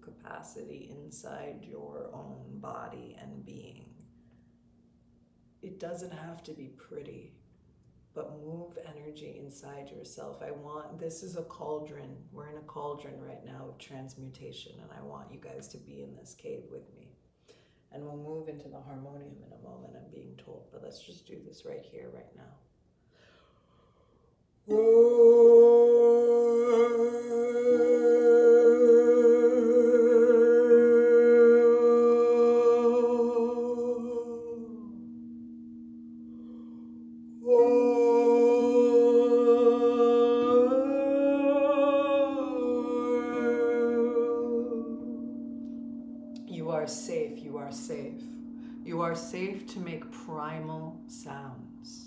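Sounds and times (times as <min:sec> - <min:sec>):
broken vocal sounds: 0:24.7 - 0:52.0
singing bowls drone: 0:24.7 - 0:52.0
woman singing held tones: 0:24.7 - 0:52.0.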